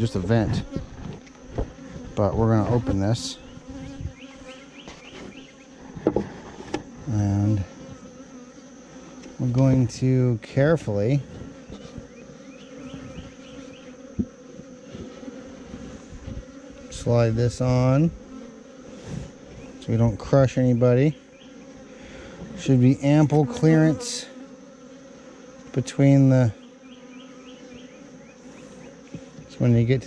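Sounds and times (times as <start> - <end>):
honeybees buzzing: 0.0 - 30.0.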